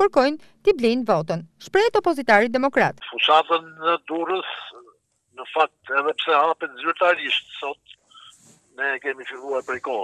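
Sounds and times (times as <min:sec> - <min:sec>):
man speaking over telephone: 0:03.0 - 0:10.0.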